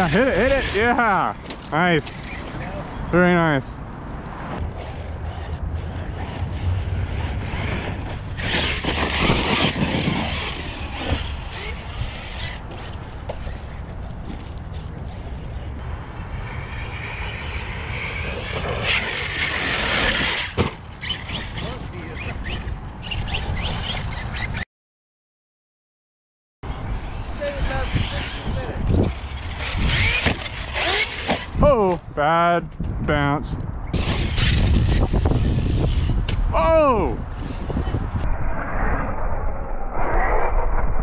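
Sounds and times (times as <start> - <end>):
tyre and wind noise: 0.0 - 24.6, 26.6 - 41.0.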